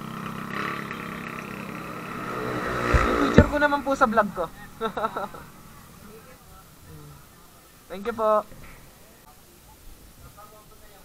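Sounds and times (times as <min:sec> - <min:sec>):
motorcycle engines idling: 0:00.0 - 0:09.6.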